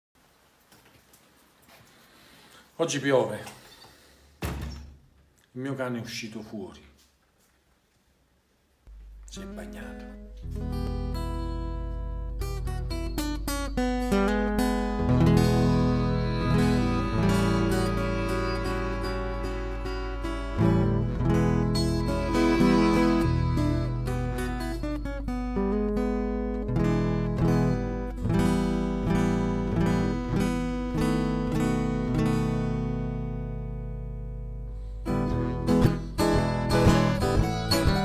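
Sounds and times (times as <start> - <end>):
strummed acoustic guitar blues: 9.4 - 38.0
harmonica held notes: 10.2 - 26.0.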